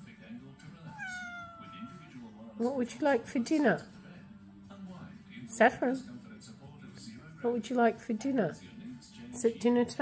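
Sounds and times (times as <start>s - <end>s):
cat meowing: 0.9s - 2.2s.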